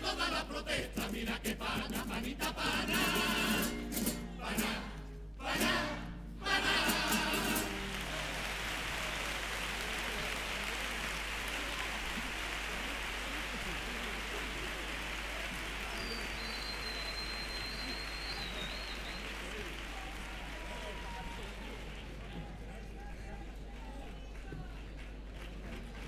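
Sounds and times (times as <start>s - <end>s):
audience applauding: 6.4s - 26.0s.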